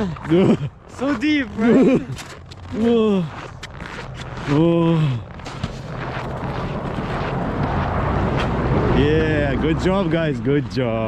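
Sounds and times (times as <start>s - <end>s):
wind on microphone: 5.6s - 9.9s.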